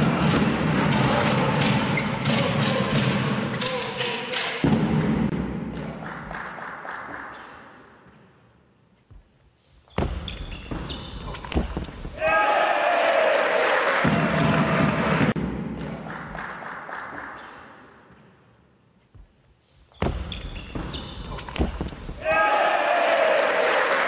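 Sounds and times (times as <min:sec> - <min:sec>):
shoe squeaks on floor: 0:09.7 - 0:12.2, 0:19.7 - 0:22.2
crowd cheering and applause: 0:12.2 - 0:15.4, 0:22.2 - 0:24.0
player shouting: 0:22.2 - 0:23.8.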